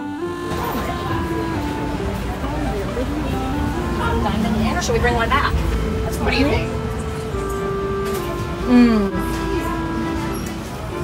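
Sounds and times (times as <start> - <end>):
indistinct voices: 0.0 - 11.0
street traffic rumble: 0.0 - 11.0.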